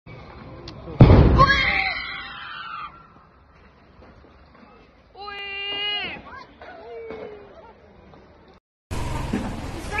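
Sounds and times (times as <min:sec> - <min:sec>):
loud explosion: 0:01.0 - 0:01.6.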